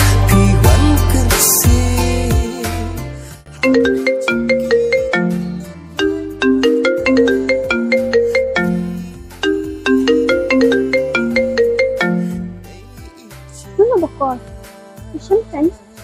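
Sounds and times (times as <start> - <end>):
phone ringtone melody: 3.6 - 12.7.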